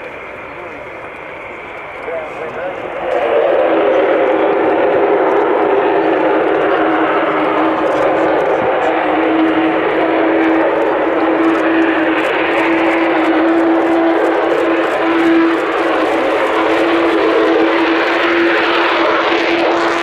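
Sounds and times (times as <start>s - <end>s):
jet engine roar: 0.0s - 20.0s.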